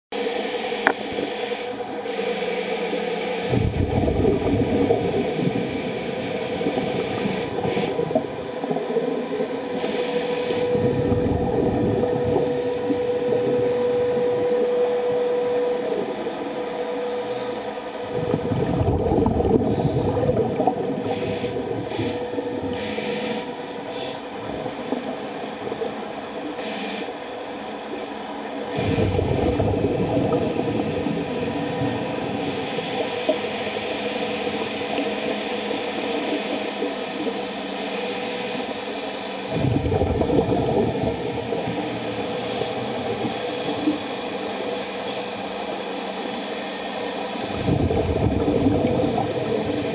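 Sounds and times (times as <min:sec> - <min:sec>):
underwater thruster motor whine: 0:00.1 - 0:49.9
churning water hiss: 0:00.2 - 0:49.9
low rumbling surges: 0:03.5 - 0:09.8, 0:10.6 - 0:22.8.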